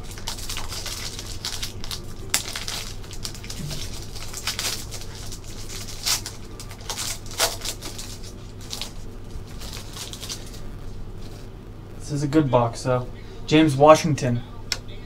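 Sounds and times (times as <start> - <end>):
foil wrapper tearing and crinkling: 0.0 - 11.5.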